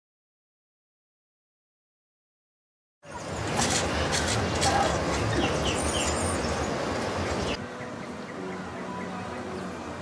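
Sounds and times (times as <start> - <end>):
bird chirps: 5.1 - 6.6.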